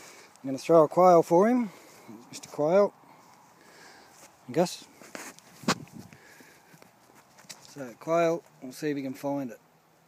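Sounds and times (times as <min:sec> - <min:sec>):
faint rustling: 0:01.7 - 0:08.8.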